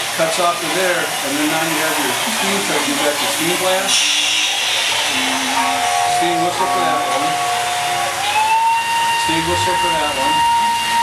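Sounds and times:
steam blast hissing: 0.0s - 11.0s
steam whistle: 2.8s - 11.0s.

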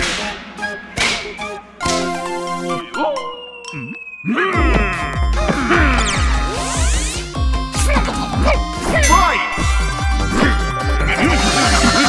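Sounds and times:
musical chord: 1.8s - 4.1s.

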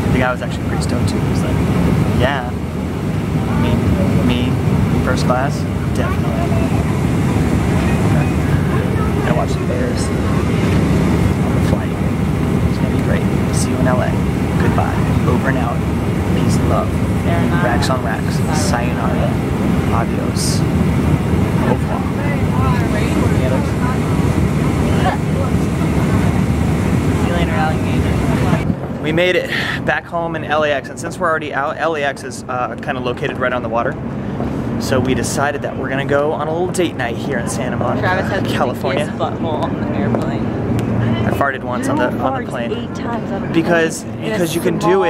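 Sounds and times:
airliner cabin rumble: 0.0s - 45.0s
faint passenger voices: 0.0s - 45.0s.

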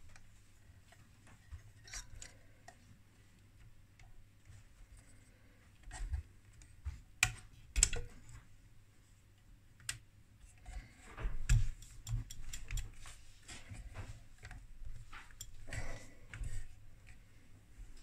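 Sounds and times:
clicks and taps of connectors: 5.8s - 8.1s, 9.8s - 10.1s, 11.4s - 13.1s.

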